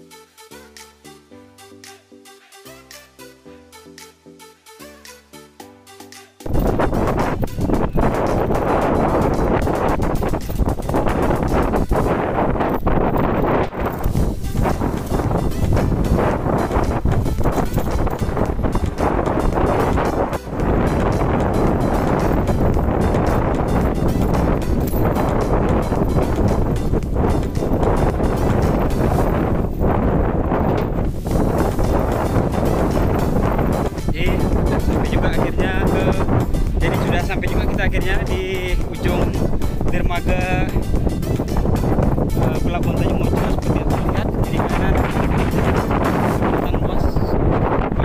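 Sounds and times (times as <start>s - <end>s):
wind buffeting microphone: 6.5s - 48.0s.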